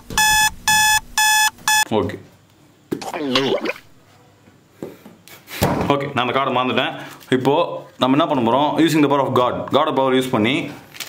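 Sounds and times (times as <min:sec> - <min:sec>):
electronic alarm beeping: 0:00.0 - 0:01.9.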